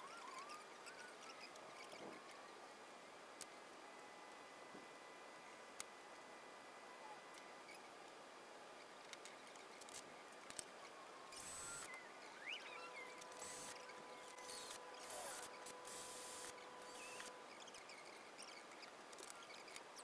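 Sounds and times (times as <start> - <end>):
faint steady hum: 0.0 - 20.0
cordless drill bursts: 14.5 - 17.3.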